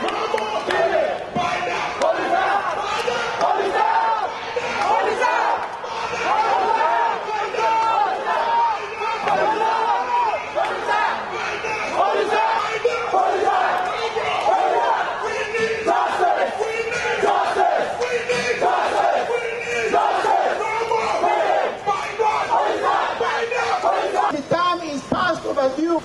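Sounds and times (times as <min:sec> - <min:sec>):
crowd of protesters shouting: 0:00.0 - 0:24.4.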